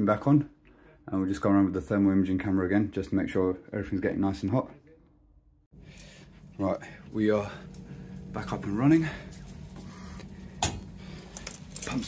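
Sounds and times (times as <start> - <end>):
steady low hum: 5.4 - 12.0
metallic jingling clicks: 11.2 - 12.0.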